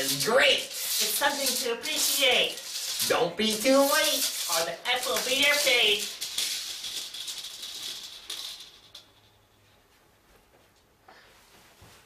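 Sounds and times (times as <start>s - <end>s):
dry high-pitched rattling: 0.0s - 9.6s.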